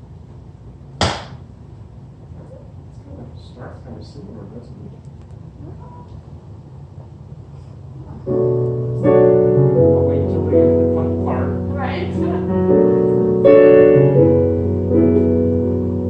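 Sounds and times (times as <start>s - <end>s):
digital piano jazz chords: 8.0s - 16.0s.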